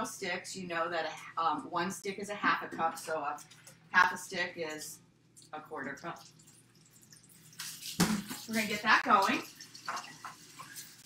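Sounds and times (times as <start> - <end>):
tap water running into sink: 6.1 - 11.0.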